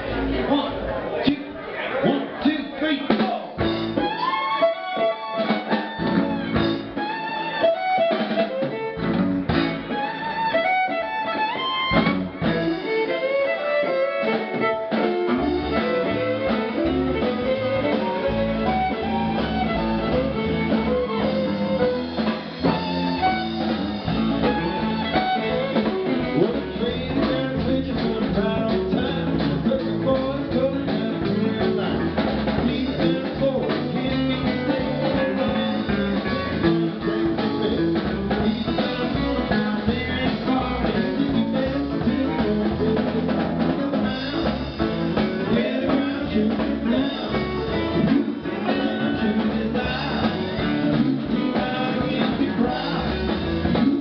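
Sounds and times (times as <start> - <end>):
bass guitar: 0.0 - 54.0
drum kit: 2.3 - 54.0
electric guitar: 3.6 - 54.0.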